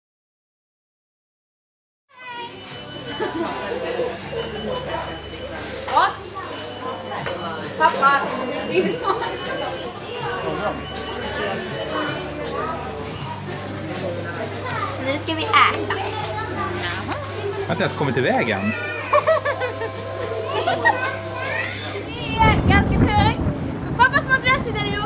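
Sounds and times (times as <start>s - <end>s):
indistinct chatter of voices: 2.1s - 25.0s
girls talking and laughing: 7.8s - 10.5s, 14.5s - 17.7s, 18.8s - 25.0s.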